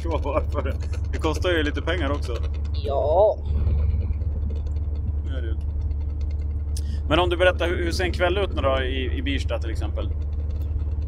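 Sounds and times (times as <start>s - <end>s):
car engine and road drone: 0.0s - 11.0s.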